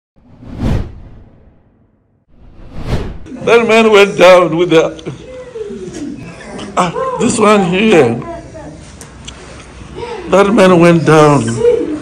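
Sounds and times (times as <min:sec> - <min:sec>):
deep whoosh: 0:00.2 - 0:03.3.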